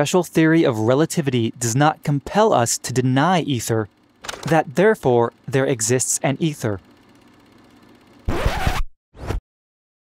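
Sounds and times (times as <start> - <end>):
record scratches: 8.2 - 9.4.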